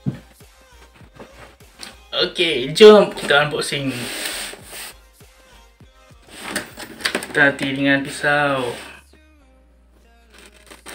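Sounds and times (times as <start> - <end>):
cardboard box scraping: 8.1 - 9.0.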